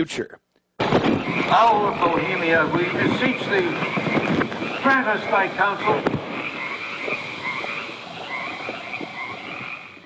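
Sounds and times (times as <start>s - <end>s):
frogs calling: 0.8s - 10.0s.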